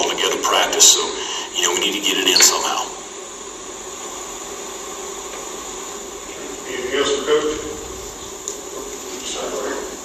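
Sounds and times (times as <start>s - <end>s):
even hiss: 0.0s - 10.0s
faint low hum: 0.0s - 10.0s.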